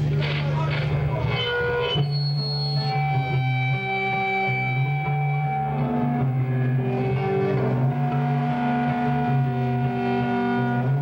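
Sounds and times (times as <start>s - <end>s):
muffled talk: 0.0s - 3.4s
electric guitar chord ringing: 1.2s - 11.0s.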